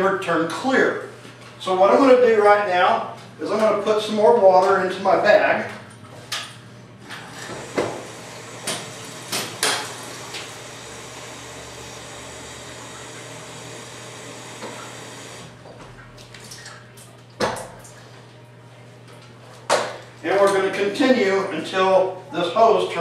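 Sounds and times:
water running from a tap: 8.0 - 15.5.

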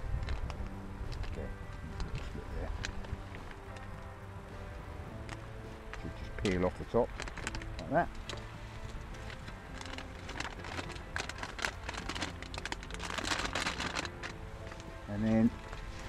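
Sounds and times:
plastic packaging crinkling: 6.0 - 14.8.

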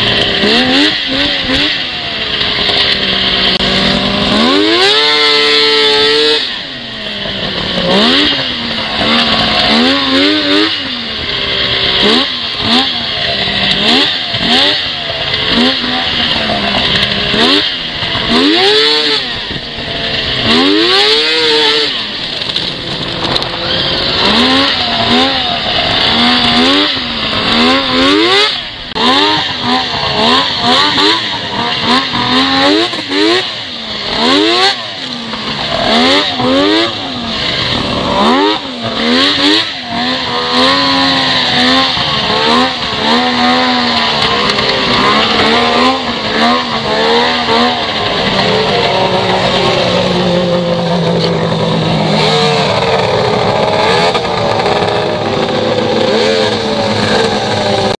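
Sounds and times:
snowmobile engine revving: 0.0 - 58.0.

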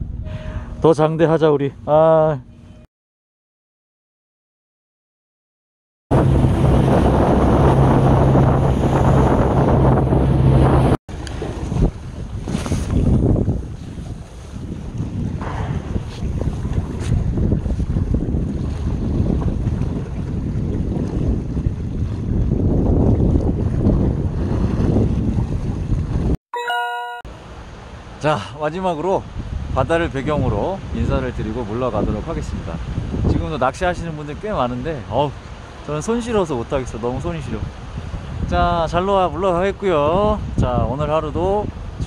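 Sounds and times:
low engine drone: 6.1 - 11.0
wind buffeting microphone: 6.1 - 26.4, 29.2 - 34.6, 37.1 - 42.0
choppy sea waves: 6.1 - 26.8, 27.4 - 42.0.

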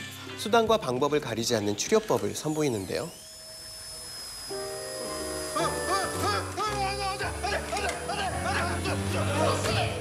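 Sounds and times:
electric saw motor whine: 1.4 - 9.7
light comedic music with bass: 5.0 - 10.0.

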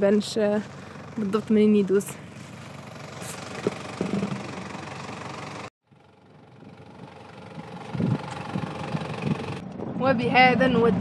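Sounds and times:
vehicle engine running at low speed: 0.0 - 11.0.

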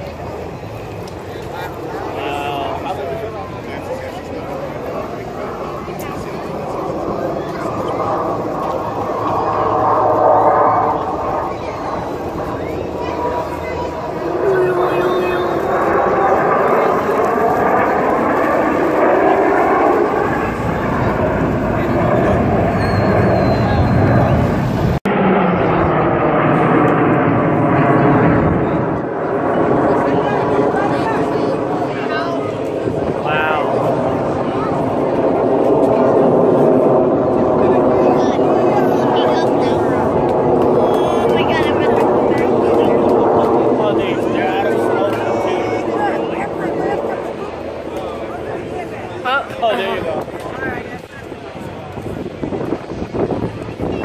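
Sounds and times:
crowd voices: 0.0 - 54.0
jet formation flying overhead: 0.0 - 54.0.

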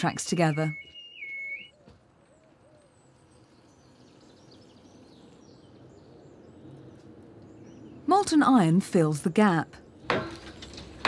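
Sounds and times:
low hoot-like bird calls: 0.0 - 8.1
birds chirping: 0.0 - 11.0.

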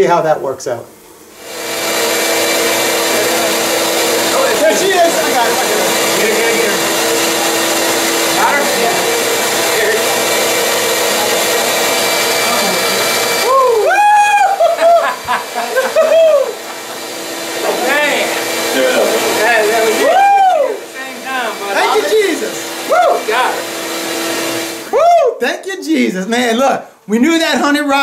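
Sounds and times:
bee vacuum humming: 1.2 - 24.9
man exclaiming: 13.4 - 16.6, 19.5 - 20.9, 21.8 - 23.6, 24.9 - 25.5.

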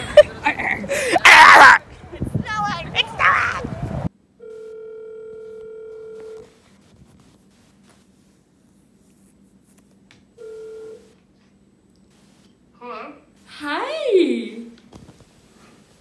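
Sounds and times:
phone ringback tone: 4.4 - 6.5, 10.4 - 11.1.

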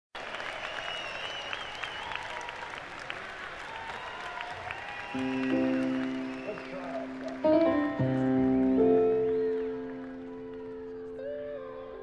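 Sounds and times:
crowd clapping and cheering: 0.1 - 12.0.

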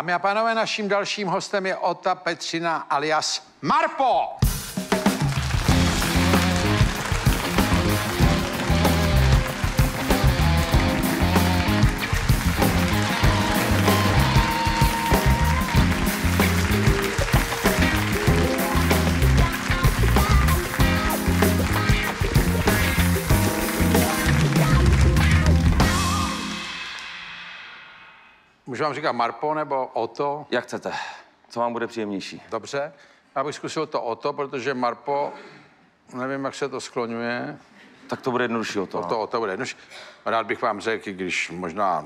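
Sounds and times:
live band playing: 4.4 - 28.6.

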